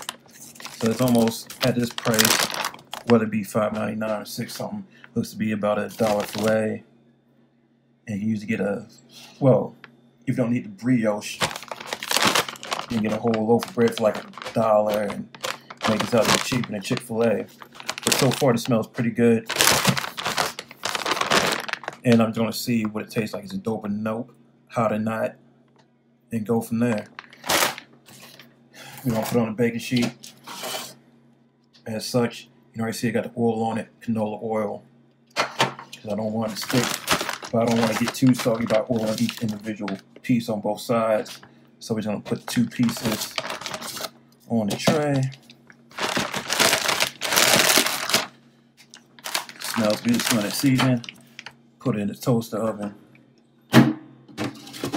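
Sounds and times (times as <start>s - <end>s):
plastic bag crinkling: 0.0s - 4.7s, 5.8s - 6.7s, 11.2s - 22.9s, 26.9s - 28.4s, 36.0s - 40.0s, 42.3s - 51.6s.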